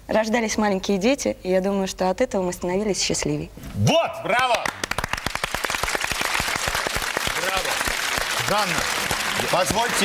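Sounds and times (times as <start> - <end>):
people clapping: 4.4 - 10.0.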